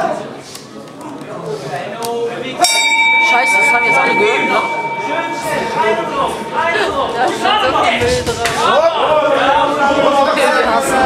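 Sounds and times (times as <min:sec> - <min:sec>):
voices in a hall: 0:00.0 - 0:11.0
boxing bell ringing: 0:02.6 - 0:08.0.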